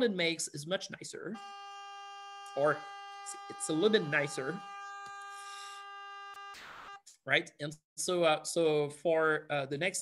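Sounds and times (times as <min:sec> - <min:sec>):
steady sawtooth tone: 0:01.4 - 0:07.0.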